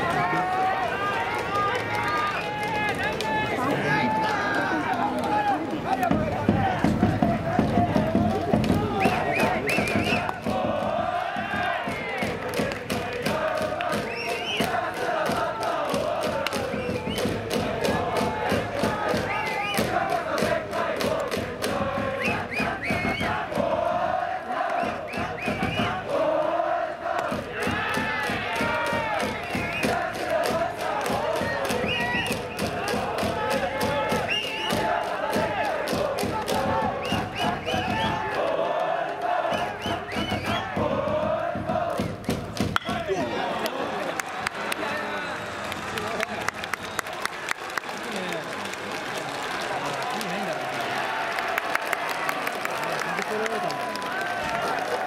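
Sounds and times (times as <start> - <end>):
crowd chanting in unison: 0.0 - 45.6, 53.3 - 55.0
steady drumbeat: 5.2 - 26.3, 27.1 - 38.5, 39.4 - 43.2.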